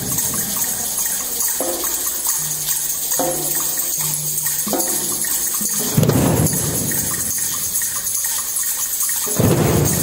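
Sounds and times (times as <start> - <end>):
hand drums: 0.0 - 10.0
shakers: 0.0 - 10.0.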